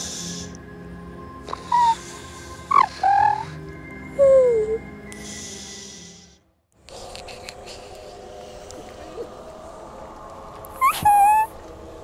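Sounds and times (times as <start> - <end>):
soft breathy hisses: 0.0 - 0.7, 1.4 - 3.7, 5.0 - 9.9
dark forest ambience: 0.0 - 12.0
low music drone: 0.0 - 12.0
gliding animal calls: 2.7 - 3.6, 10.8 - 11.6.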